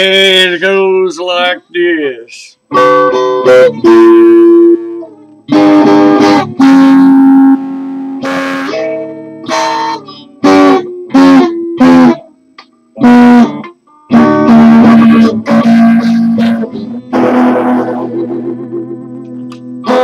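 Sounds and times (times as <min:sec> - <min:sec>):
electric guitar strumming chords: 0:00.0 - 0:20.0.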